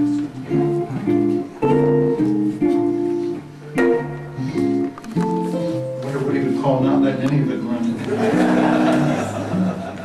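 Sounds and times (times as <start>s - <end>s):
jazz guitar chords: 0.0s - 10.0s.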